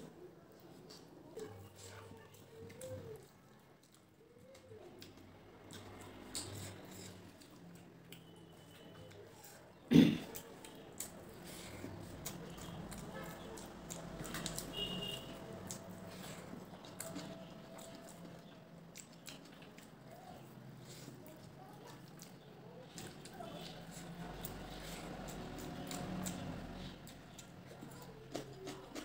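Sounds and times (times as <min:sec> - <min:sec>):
person chewing with mouth smacks: 0:00.6 - 0:29.0.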